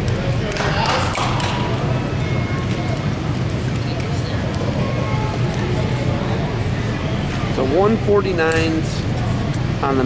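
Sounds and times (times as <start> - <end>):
people chattering in a hall: 0.0 - 10.0
steady low hum: 0.0 - 10.0.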